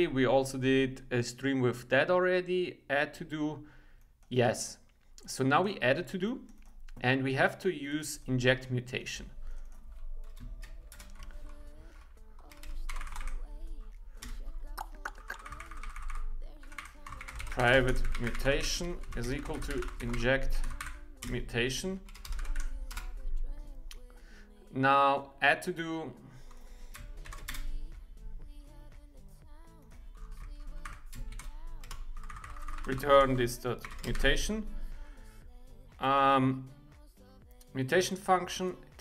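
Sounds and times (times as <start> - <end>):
faint background music: 0.0 - 39.0
typing on computer keyboard: 9.5 - 13.5, 14.2 - 21.5, 22.1 - 23.2, 26.5 - 27.9, 30.2 - 34.4.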